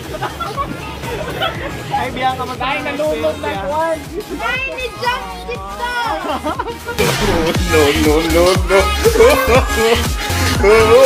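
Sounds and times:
background music: 0.0 - 11.0
people talking and laughing: 0.0 - 11.0.

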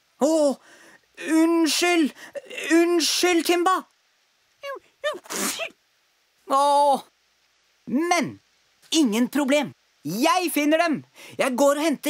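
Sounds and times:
cartoon dog sneezing: 4.7 - 5.8.

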